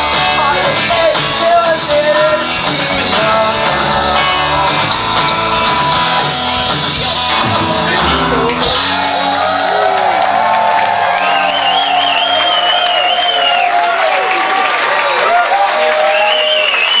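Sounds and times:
rock band final chord: 0:00.2 - 0:10.9
crowd cheering and whooping: 0:08.7 - 0:17.0.

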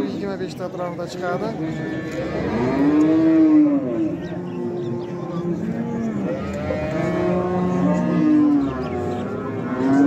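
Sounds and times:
cattle mooing: 0:01.6 - 0:10.0.

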